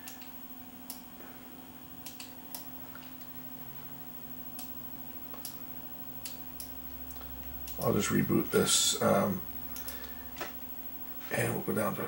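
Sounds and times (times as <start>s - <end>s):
computer mouse clicking: 0.0s - 1.0s, 2.0s - 3.3s, 4.5s - 5.6s, 6.2s - 7.8s, 9.7s - 10.7s
faint steady hum: 0.0s - 12.0s.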